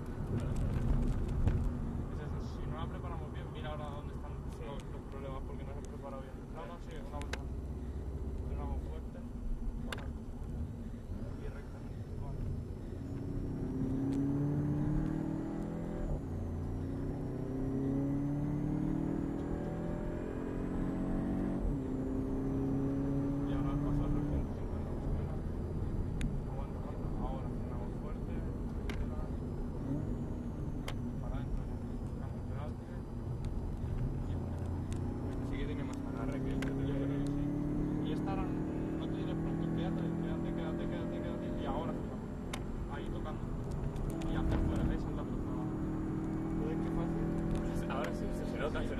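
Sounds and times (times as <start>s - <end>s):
car engine accelerating: 0.0s - 48.9s
road and wind noise: 0.0s - 48.9s.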